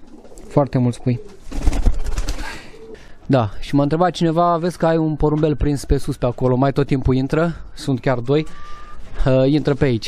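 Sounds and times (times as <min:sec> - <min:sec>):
pigeons cooing: 0:00.0 - 0:03.2, 0:08.5 - 0:09.2.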